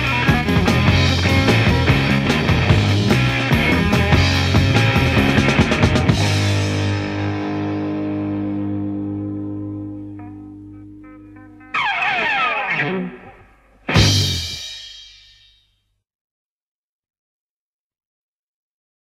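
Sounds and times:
distorted electric guitar chord: 0.0s - 14.9s
guitar slide falling in pitch: 7.1s - 14.6s.

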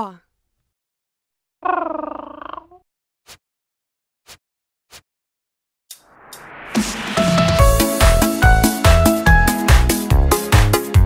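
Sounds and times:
cartoon cat meow: 1.6s - 2.8s
short sharp hit: 6.0s - 8.2s.

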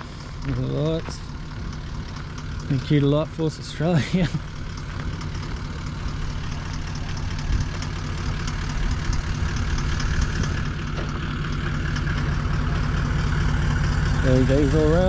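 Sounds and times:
engine idling: 0.0s - 15.0s.

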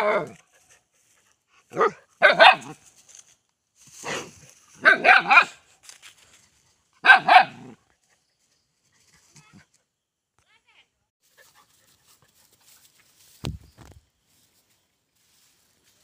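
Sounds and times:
dog barking: 1.7s - 2.8s, 4.8s - 5.6s, 7.0s - 7.8s.

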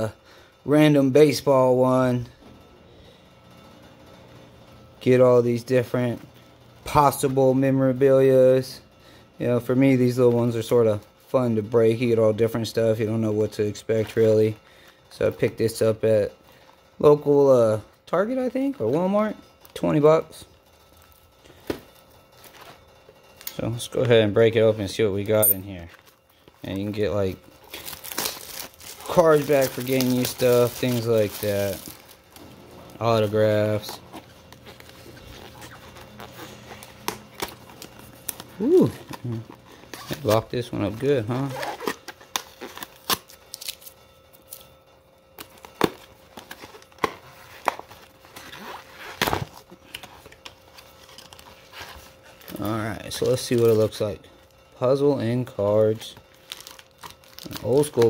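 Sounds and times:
handling shrink-wrapped box: 21.0s - 44.6s, 45.4s - 58.0s.

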